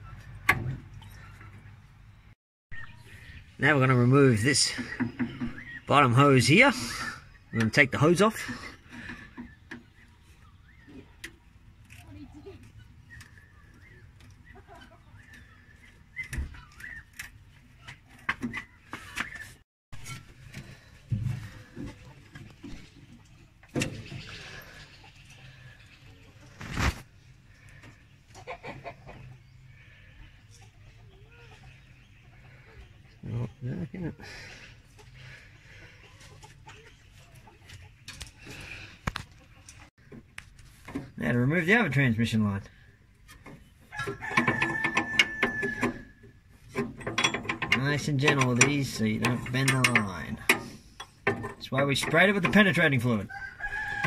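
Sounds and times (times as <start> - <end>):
hand tools knocking on metal: 44.2 - 46.0, 46.7 - 52.8.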